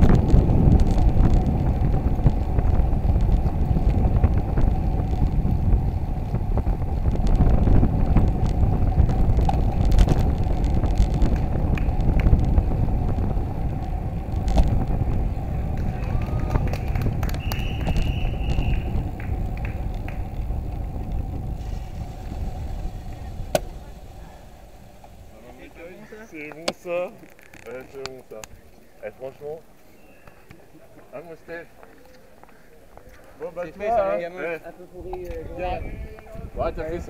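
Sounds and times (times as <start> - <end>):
wind noise on microphone: 0.0 - 28.7, 35.0 - 37.0
bicycle road rumble: 0.0 - 37.0.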